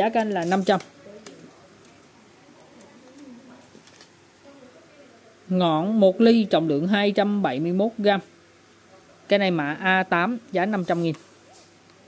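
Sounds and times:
pigeon cooing: 0:02.5 - 0:03.8.

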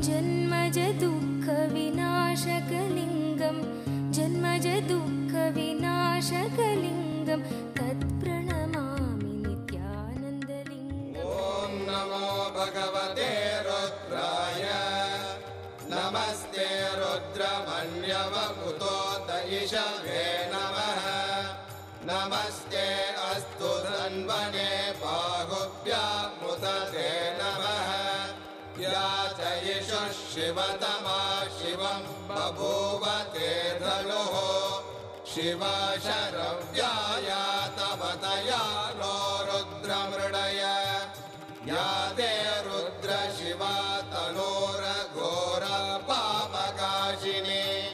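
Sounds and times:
mantra chanted melodically: 0:11.2 - 0:47.9.

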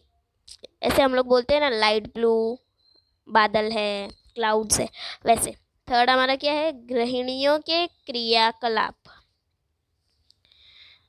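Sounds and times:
soft breath drawn in: 0:10.4 - 0:11.0.

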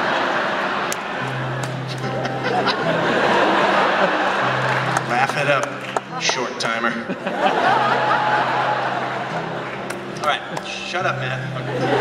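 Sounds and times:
concert audience noise: 0:00.0 - 0:12.0
electric guitar playing: 0:01.1 - 0:12.0.

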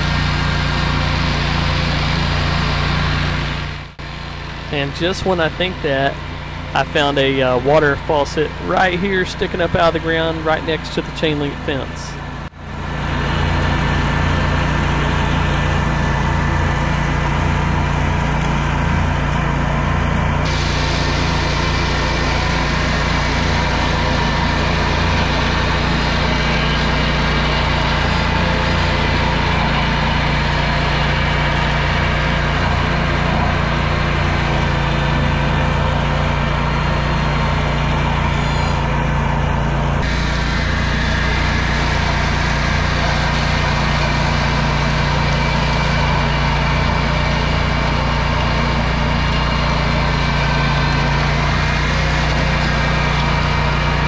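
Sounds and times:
mower deck cutting grass: 0:00.0 - 0:54.0
tractor engine running: 0:00.0 - 0:54.0.

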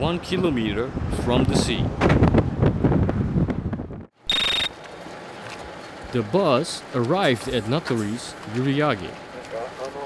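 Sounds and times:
wind buffeting microphone: 0:00.0 - 0:04.1
high-pitched electronic beep: 0:04.3 - 0:04.7.

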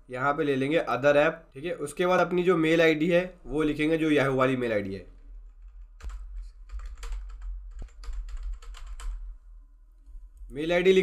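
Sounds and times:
computer keyboard typing: 0:05.4 - 0:09.3.

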